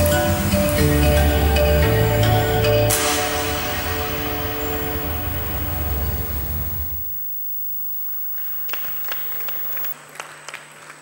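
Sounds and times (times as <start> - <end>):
music with strong bass line: 0.9 - 6.9
steady low hum: 3.4 - 10.0.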